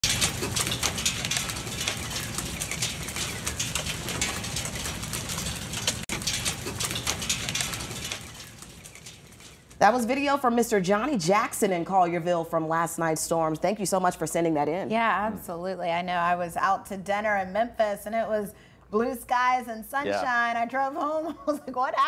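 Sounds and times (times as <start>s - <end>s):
heavy rain on metal table: 0.0s - 10.0s.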